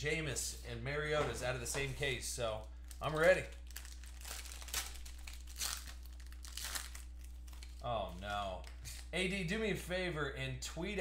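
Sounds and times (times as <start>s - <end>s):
foil wrapper crinkling and tearing: 2.7s - 9.1s.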